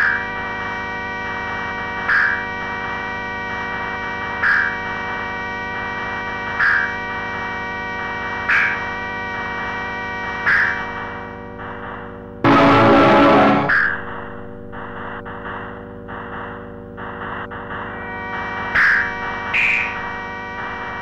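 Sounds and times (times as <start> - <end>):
buzzing electronic drone: 12.3 - 21.0
bright accented electronic sound: 12.4 - 14.1.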